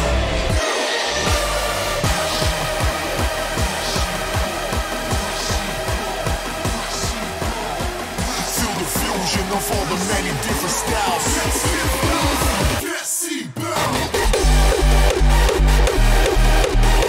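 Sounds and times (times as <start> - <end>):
sustained synth chords: 0.0 - 12.8, 14.2 - 17.0
heavy kick drum beat: 1.3 - 12.8.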